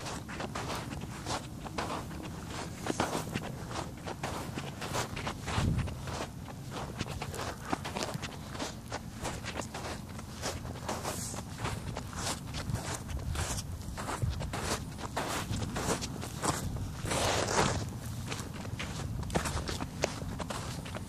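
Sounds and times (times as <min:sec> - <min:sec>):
footsteps walking: 0:00.0 - 0:21.0.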